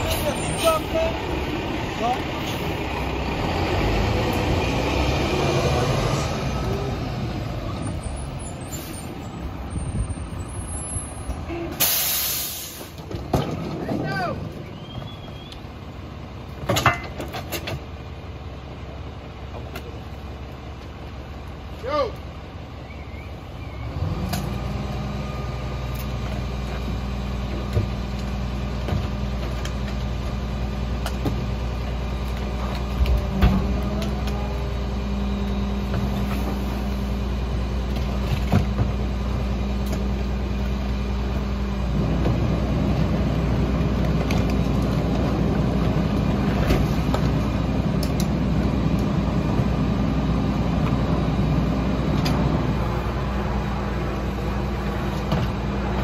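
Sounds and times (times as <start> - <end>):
garbage truck engine running: 12.6 - 56.0.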